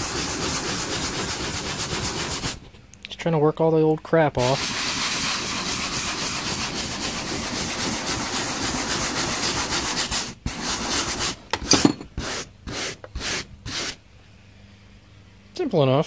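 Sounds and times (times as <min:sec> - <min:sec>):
hand brush scrubbing foam: 0:00.0 - 0:02.7, 0:04.4 - 0:11.4, 0:12.2 - 0:14.0.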